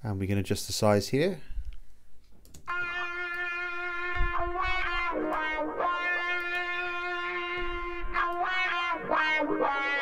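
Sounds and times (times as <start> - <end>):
distorted electric guitar solo: 2.7 - 10.0.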